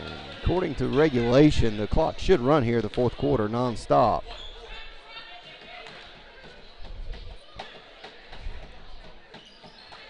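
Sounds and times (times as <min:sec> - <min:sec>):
faint voices in gym: 0:00.0 - 0:10.0.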